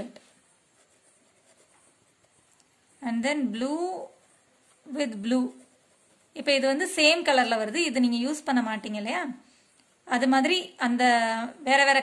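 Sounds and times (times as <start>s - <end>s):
pen scratching on paper: 0.0s - 9.1s.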